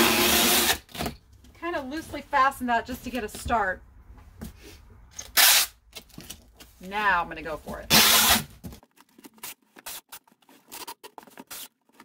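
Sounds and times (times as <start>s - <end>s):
packing tape screeching off roll: 0.0s - 1.1s, 5.2s - 5.8s, 7.9s - 8.6s, 9.2s - 12.0s.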